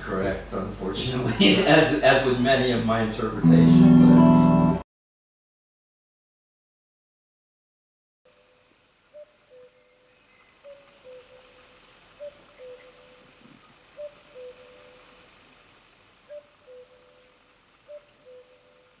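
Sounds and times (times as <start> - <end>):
soft steady hiss: 0.0 - 4.8, 8.3 - 19.0.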